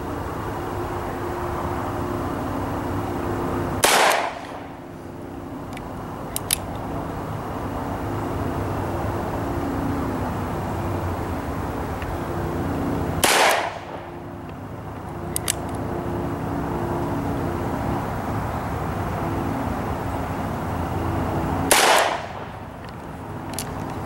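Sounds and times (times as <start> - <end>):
steady low drone: 0.0 - 24.0
revolver shots: 3.8 - 4.5, 13.2 - 14.0, 21.7 - 22.4
light clicks: 5.7 - 6.9, 14.4 - 15.9, 22.8 - 24.0.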